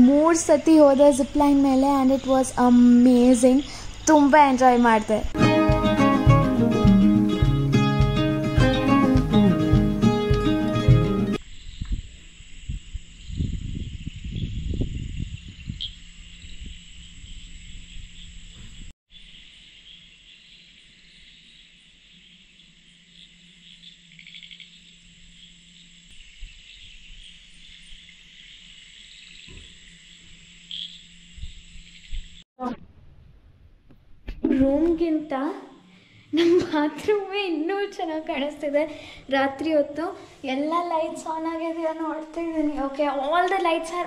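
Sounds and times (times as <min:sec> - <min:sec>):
crickets chirring: 0:00.0 - 0:09.2, 0:10.0 - 0:32.5, 0:37.1 - 0:44.0
guitar music: 0:05.4 - 0:11.4.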